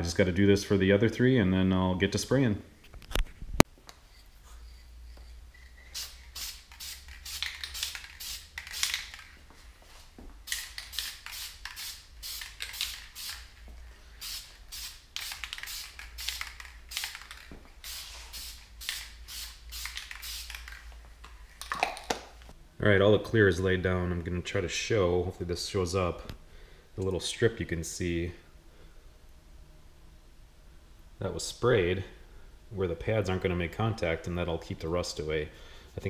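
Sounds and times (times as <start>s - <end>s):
aerosol spray hissing: 4.1s - 9.4s, 10.4s - 21.0s.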